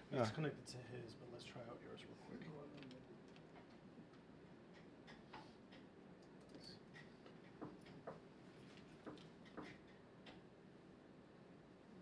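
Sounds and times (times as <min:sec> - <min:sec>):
faint irregular clicks and taps: 0:02.7 - 0:10.5.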